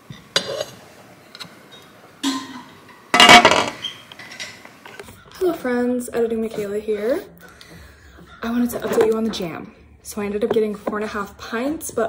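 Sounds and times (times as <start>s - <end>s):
spatula scraping pot: 0.4s - 0.8s, 8.3s - 9.6s
woman speaking: 5.3s - 7.4s, 8.3s - 12.0s.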